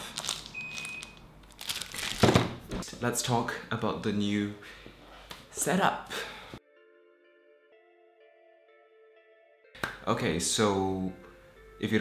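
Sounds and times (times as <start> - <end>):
handling clicks and crinkles: 0.1 - 2.2.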